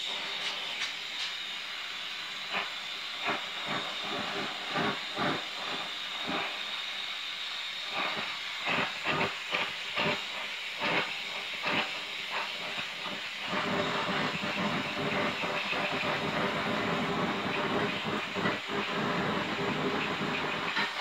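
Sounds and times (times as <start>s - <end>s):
torch flame hissing: 0.0s - 21.0s.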